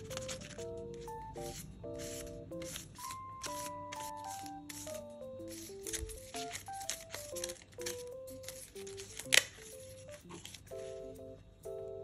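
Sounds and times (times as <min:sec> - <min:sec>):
paper rustling: 0:00.0 - 0:00.8, 0:01.5 - 0:11.0
gentle background music: 0:00.0 - 0:12.0.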